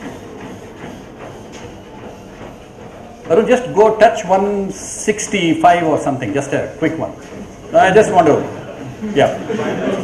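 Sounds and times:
low hum: 0.0s - 3.3s
footfalls on treadmill: 0.0s - 8.9s.

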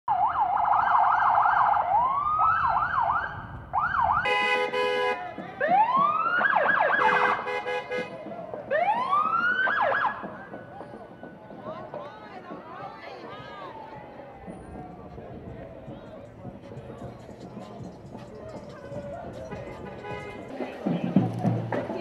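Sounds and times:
emergency vehicle sirens: 0.1s - 11.9s, 13.0s - 15.6s
horn blasts: 4.2s - 5.4s, 7.0s - 8.2s, 19.5s - 20.5s.

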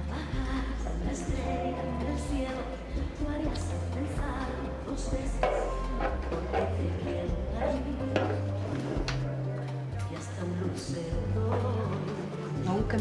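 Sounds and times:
club music with bass and beat: 0.0s - 10.0s.

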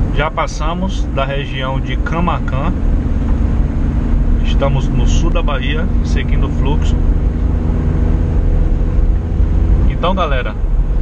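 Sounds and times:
road rumble: 0.0s - 11.0s
truck engine drone: 0.0s - 11.0s.

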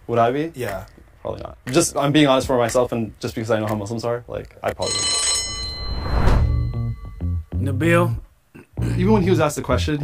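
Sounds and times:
bell-like chime: 4.8s - 7.4s
whoosh: 5.8s - 6.8s.

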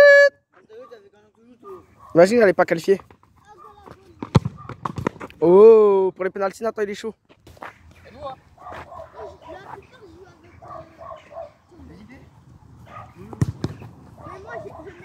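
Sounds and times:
football being kicked: 4.1s - 5.3s, 13.2s - 13.9s.

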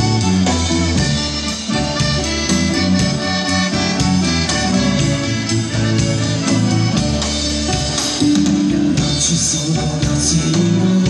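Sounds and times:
accordion melody: 0.0s - 10.9s
acoustic guitar: 0.0s - 11.0s
drum kit steady beat: 0.0s - 11.0s
electric bass: 0.0s - 11.0s.

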